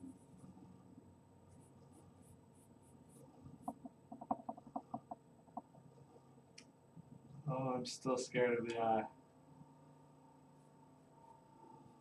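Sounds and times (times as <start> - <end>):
charcoal drawing on paper: 0.0 - 6.1.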